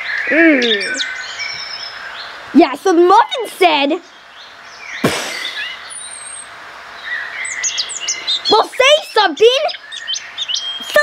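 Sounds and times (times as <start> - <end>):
explosion blast: 5.0 - 5.7.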